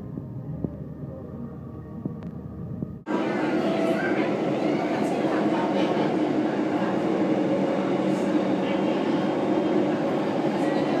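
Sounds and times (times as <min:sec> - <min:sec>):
loud rumbling noise: 0:00.0 - 0:11.0.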